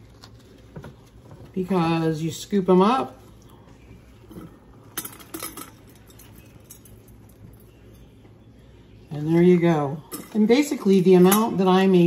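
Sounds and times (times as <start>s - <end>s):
faint clinks and rattles: 4.2s - 8.1s.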